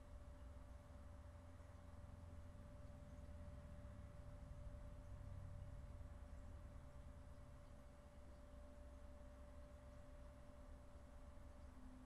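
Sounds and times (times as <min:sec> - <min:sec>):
thin steady hum: 0:00.0 - 0:12.0.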